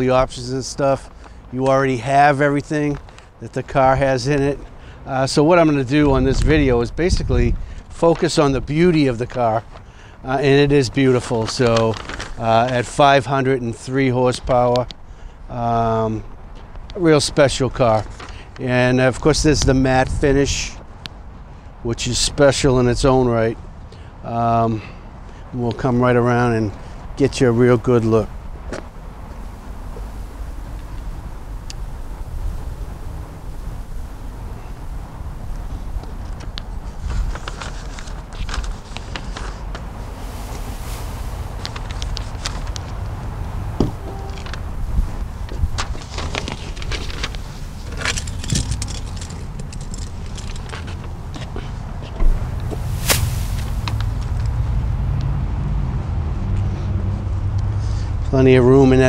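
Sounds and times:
low outdoor rumble: 25.8 - 57.5.

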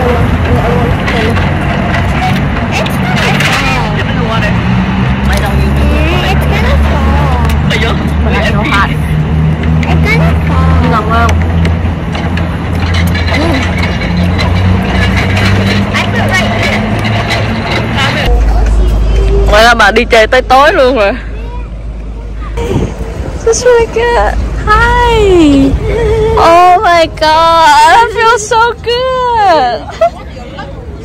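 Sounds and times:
loud steady low rumble: 0.0 - 29.8
voices talking: 0.0 - 31.0.

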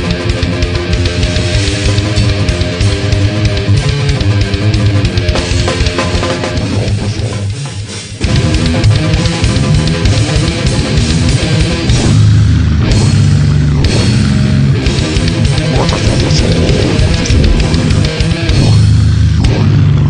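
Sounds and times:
fast drumming: 0.0 - 12.4, 13.8 - 19.6
distorted electric guitars: 0.0 - 20.0.

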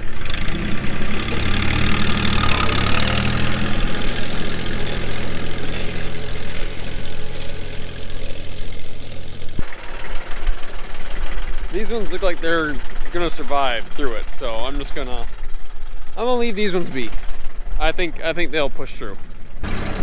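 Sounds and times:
rough rumble: 0.0 - 20.0
tractor diesel engine running: 0.0 - 20.0.

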